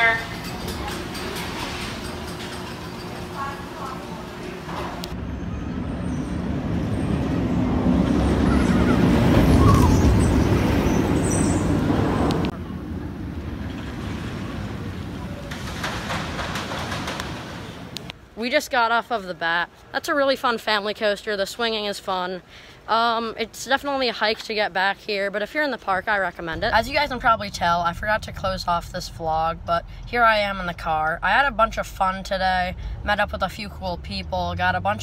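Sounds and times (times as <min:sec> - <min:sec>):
roller coaster train on track: 0:00.0 - 0:18.2.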